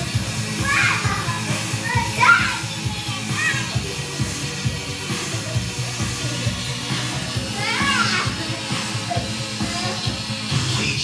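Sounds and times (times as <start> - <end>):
music with a steady beat: 0.0 - 11.0
girl shouting excitedly: 0.6 - 3.7, 7.6 - 8.3.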